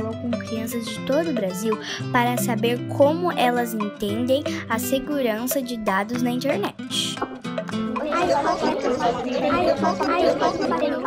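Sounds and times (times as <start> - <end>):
children talking over each other: 7.9 - 11.0.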